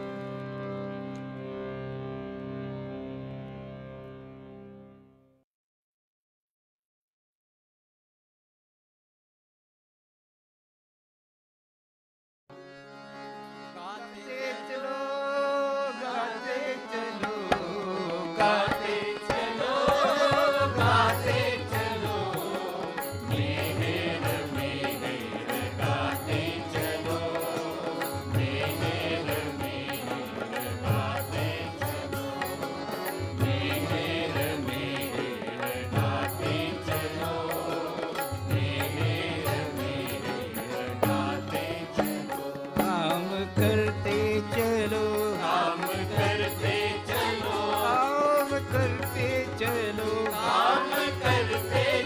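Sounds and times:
group devotional chanting: 0:15.2 - 0:52.0.

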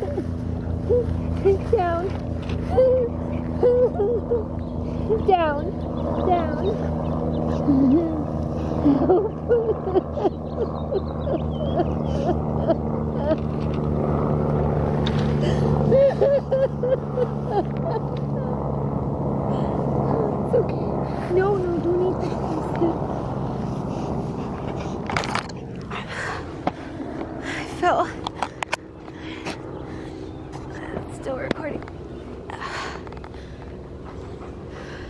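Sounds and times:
whimpering cries: 0:00.0 - 0:05.5, 0:06.3 - 0:13.6, 0:15.4 - 0:18.8
low hum: 0:00.0 - 0:35.0.

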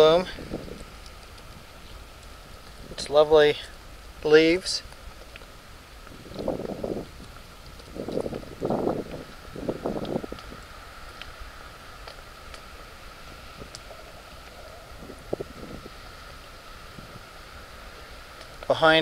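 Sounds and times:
wind buffeting microphone: 0:00.0 - 0:03.3, 0:05.7 - 0:11.8, 0:13.2 - 0:19.0
low wind rumble: 0:00.0 - 0:19.0.

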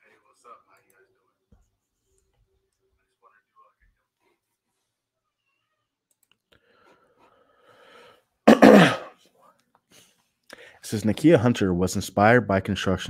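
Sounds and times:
man sneezing: 0:08.5 - 0:09.2.

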